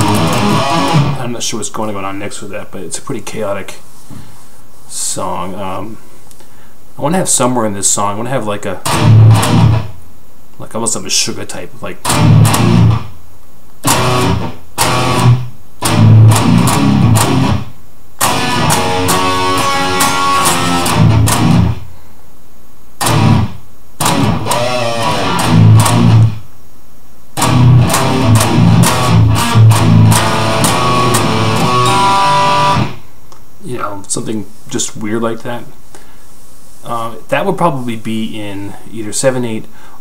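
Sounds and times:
distorted electric guitar metal riff: 0.0 - 1.3, 8.8 - 9.9, 12.0 - 13.1, 13.8 - 21.8, 23.0 - 26.4, 27.4 - 33.1.

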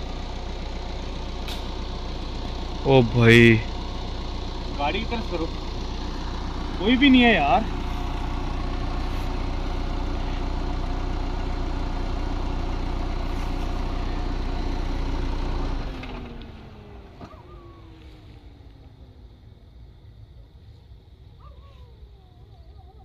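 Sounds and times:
car engine idling: 0.0 - 23.0.

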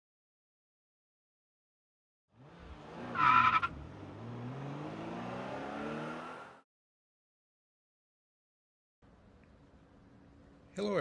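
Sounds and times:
car engine revving: 2.4 - 6.6
car tyres squealing: 2.7 - 3.9.

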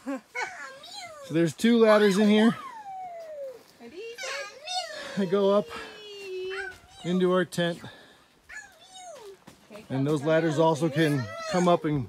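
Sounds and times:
child's high wordless call: 8.5 - 9.4.

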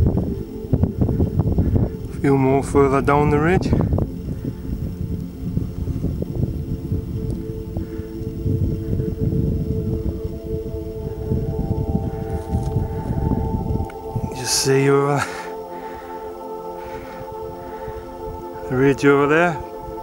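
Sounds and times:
slow ambient music: 0.0 - 20.0
wind buffeting microphone: 0.0 - 20.0.

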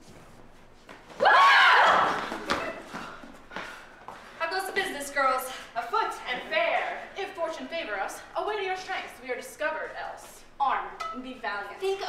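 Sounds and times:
people speaking: 4.4 - 12.0.

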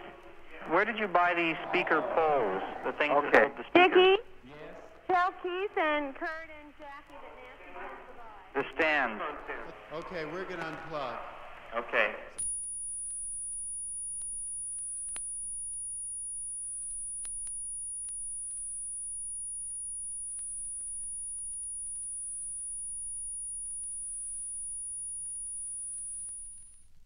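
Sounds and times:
faint clicks: 12.4 - 27.0.

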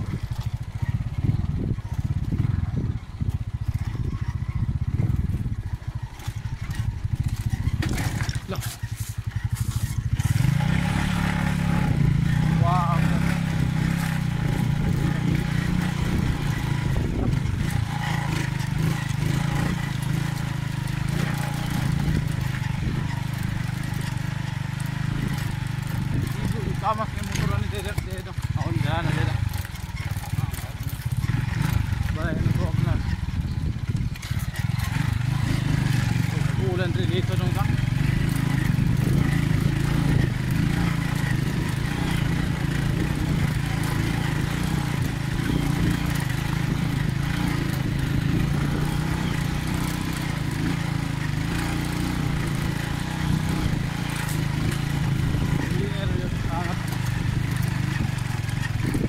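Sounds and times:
motorcycle engine running: 0.0 - 59.0
knocks and rattles: 4.9 - 10.1.

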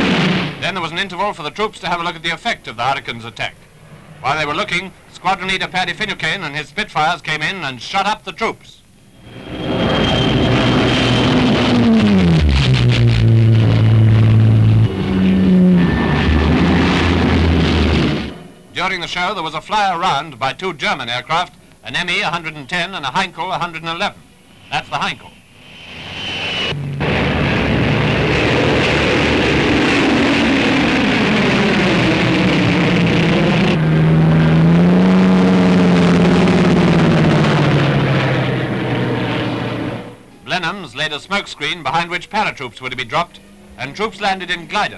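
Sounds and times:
fighter plane engines passing overhead: 0.0 - 7.2, 9.0 - 44.9.

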